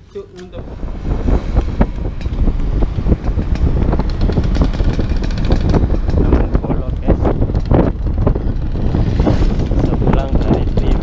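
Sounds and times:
wind buffeting microphone: 0.0s - 11.0s
scooter engine running: 0.7s - 11.0s.

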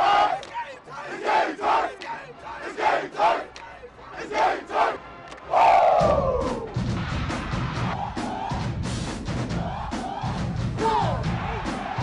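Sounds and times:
team shouting a chant: 0.0s - 6.6s, 9.5s - 12.0s.

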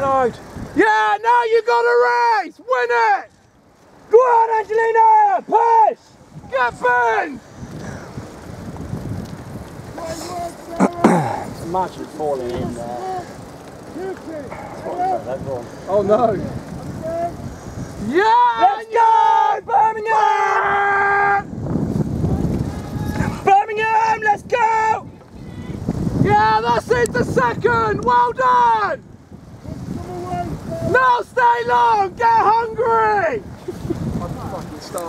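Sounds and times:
bicycle rolling: 0.0s - 35.0s
wind on microphone: 6.2s - 35.0s
low rumbling noise: 7.4s - 18.1s
faint distant shouting: 12.6s - 21.5s
spectator shouting cheers: 18.1s - 21.5s.

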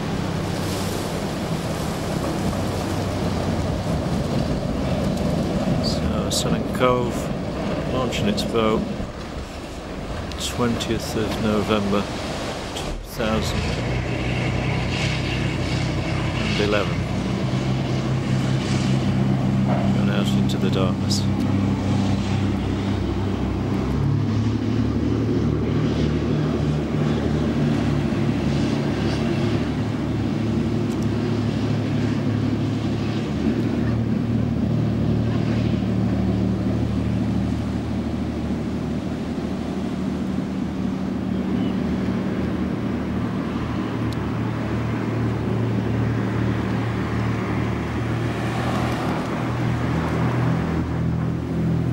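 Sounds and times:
diesel engines droning: 0.0s - 51.9s
surf: 0.0s - 51.9s.

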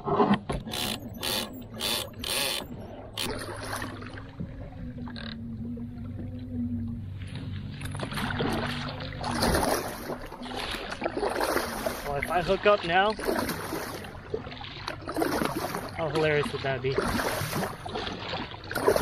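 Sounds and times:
kayak paddle stroking water: 0.0s - 19.0s
water splashing: 0.6s - 19.0s
steady low hum: 0.8s - 10.4s.

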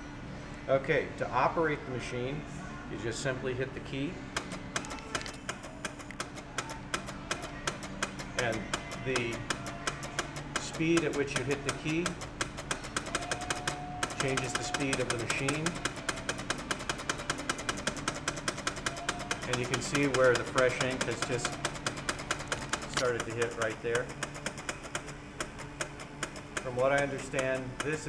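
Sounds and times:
ticker tape machine clicking: 4.4s - 28.0s.

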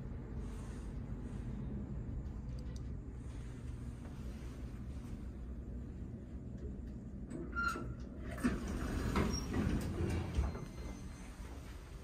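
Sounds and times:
elevator doors clunking and rumbling: 5.7s - 12.0s
elevator tone: 7.0s - 12.0s.

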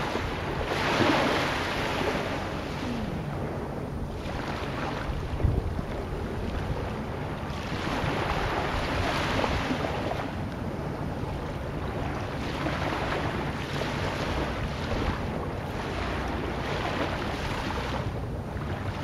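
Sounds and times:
waves washing: 0.0s - 19.0s
wind: 0.0s - 19.0s.

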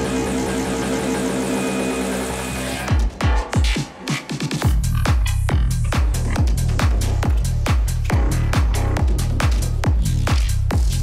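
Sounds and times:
psytrance synth tones: 0.0s - 3.4s.

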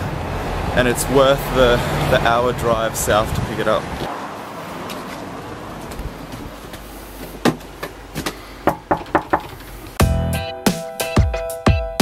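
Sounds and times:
sharp knocks: 8.6s - 9.6s.

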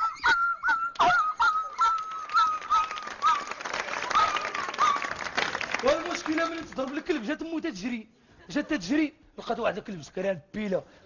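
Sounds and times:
man imitating dog yelping: 0.0s - 3.5s.

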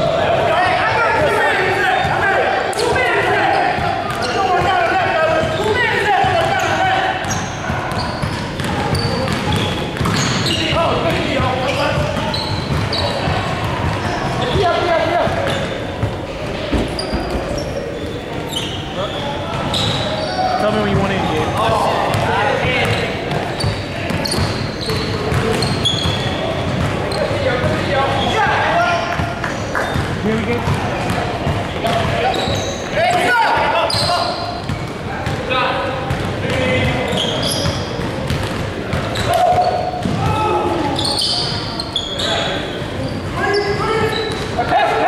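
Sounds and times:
sneaker squeaks: 1.2s - 45.0s
basketball bouncing: 7.2s - 18.3s, 20.9s - 27.9s, 29.1s - 32.7s, 34.6s - 40.5s.

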